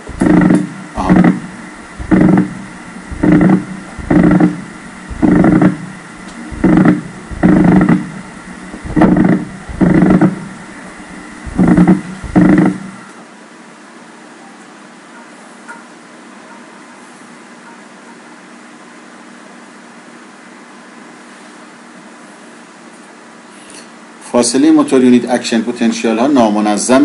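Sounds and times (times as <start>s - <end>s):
loudspeaker bursts of muscle firing: 0.0s - 13.0s.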